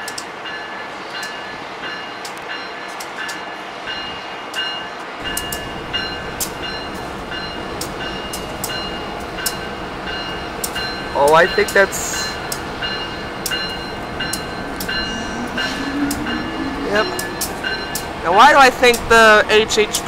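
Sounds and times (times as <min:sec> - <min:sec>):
locomotive bell ringing: 0:00.0 - 0:20.0
low train rumble: 0:00.0 - 0:20.0.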